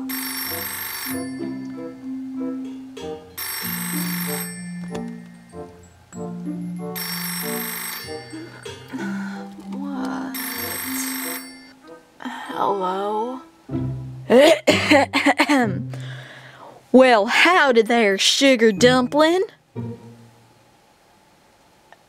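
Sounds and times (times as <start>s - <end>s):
telephone bell ringing: 0.0s - 2.0s, 3.4s - 9.0s, 10.3s - 11.8s
background music: 0.0s - 16.6s, 18.2s - 20.6s.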